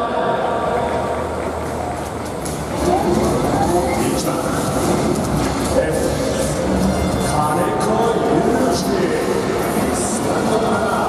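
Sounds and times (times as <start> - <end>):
crowd chatter: 0.0 - 11.0
public address announcement: 0.0 - 11.0.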